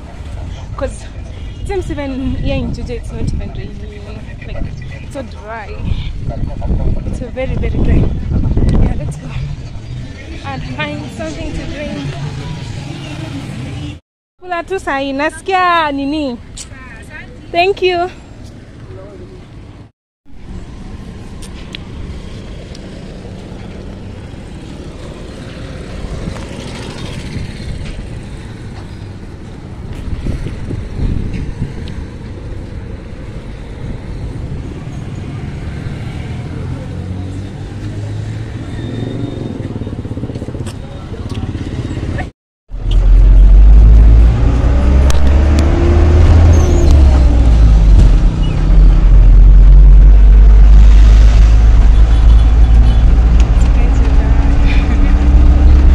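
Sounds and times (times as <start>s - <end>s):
road traffic: 0.0s - 55.9s
vehicle rumble from inside: 42.0s - 55.9s.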